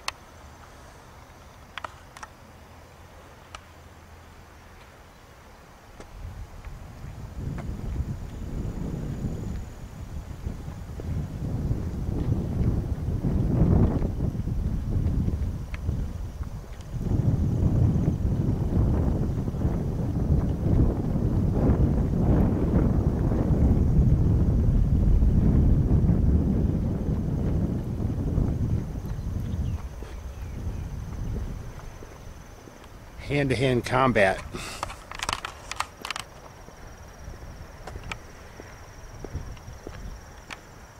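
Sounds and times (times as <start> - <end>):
wind buffeting microphone: 5.9 - 40.9.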